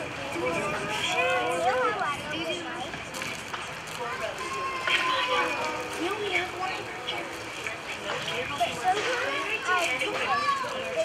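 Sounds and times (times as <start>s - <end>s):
children's voices overlapping: 0.0s - 11.0s.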